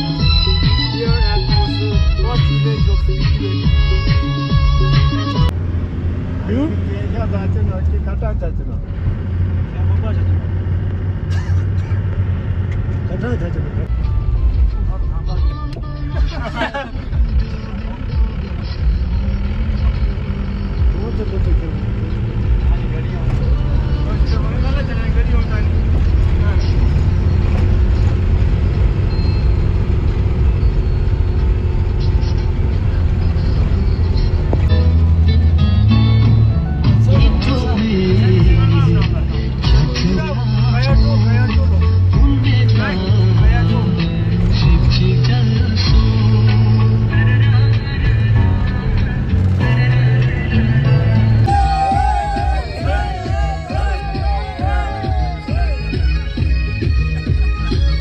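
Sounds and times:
music: 0.0 - 5.6, 13.9 - 26.8, 32.3 - 58.0
vehicle engine and tyres on gravel: 17.5 - 35.9
voices: 51.2 - 56.4.

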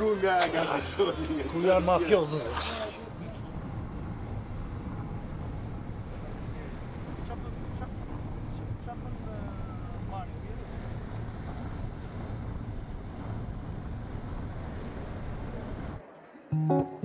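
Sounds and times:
road and engine noise in car: 3.0 - 16.3.

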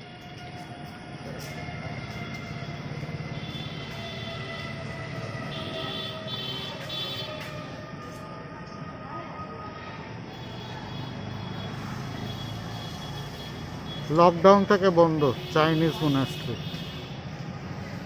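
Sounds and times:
motor vehicle running: 0.0 - 8.9, 10.2 - 18.0.

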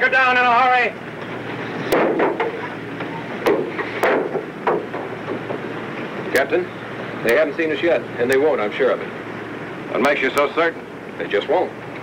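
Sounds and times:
submarine engines running: 0.0 - 12.0
sharp knocks: 1.9 - 2.7, 3.4 - 5.7.

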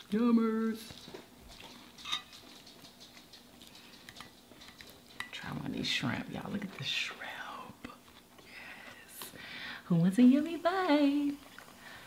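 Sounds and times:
crunching and mouth smacks: 0.8 - 5.3.

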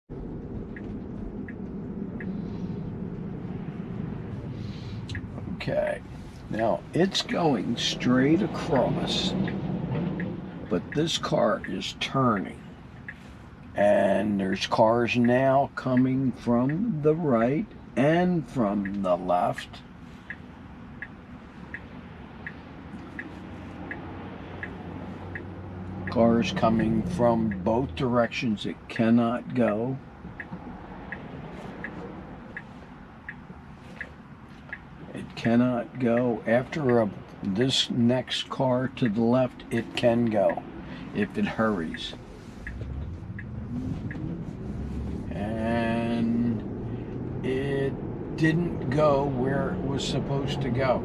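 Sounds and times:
low cabin hum: 0.1 - 51.0
tyre and road noise: 0.1 - 51.0
turn signal clicking: 0.2 - 51.0.

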